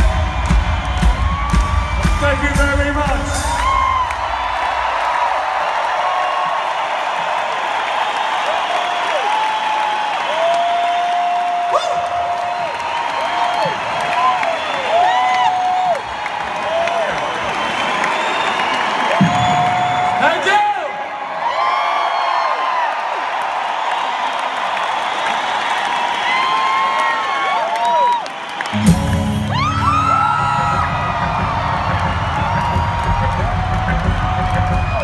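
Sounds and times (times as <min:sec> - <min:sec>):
crowd cheering and applauding: 0:00.0 - 0:35.0
whoops and held shouts: 0:07.9 - 0:35.0.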